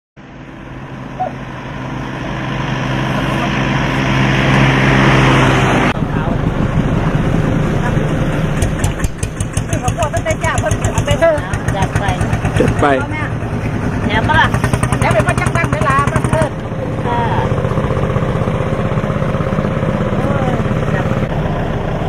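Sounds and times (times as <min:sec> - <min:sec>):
vehicle engine approaching: 0:00.2 - 0:22.0
voices: 0:01.1 - 0:01.5, 0:05.9 - 0:21.5.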